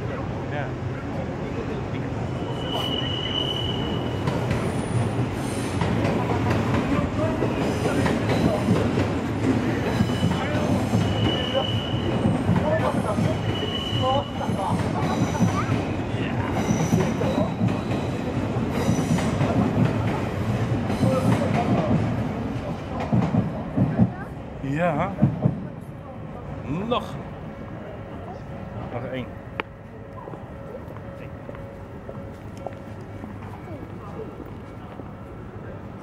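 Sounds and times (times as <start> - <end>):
train rumbling past: 0.0 - 36.0
high wheel squeals: 2.4 - 5.8, 10.0 - 16.0.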